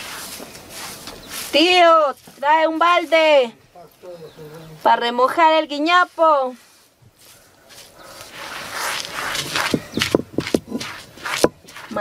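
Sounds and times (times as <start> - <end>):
stone grinding grain: 7.8 - 12.0
stone knocking on stone slab: 9.4 - 12.0.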